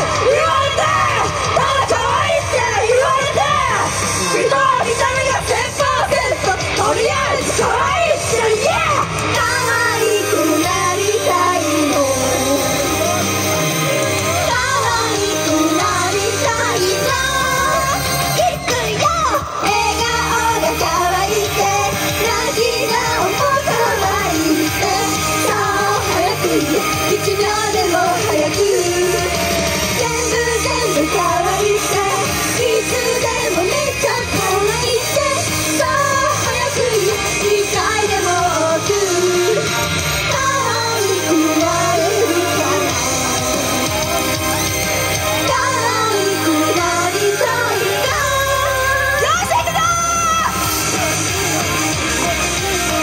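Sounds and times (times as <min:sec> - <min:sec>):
young woman singing into microphone: 0:00.0 - 0:13.8, 0:14.4 - 0:43.9, 0:45.4 - 0:50.7
loud pop backing track: 0:00.0 - 0:53.0.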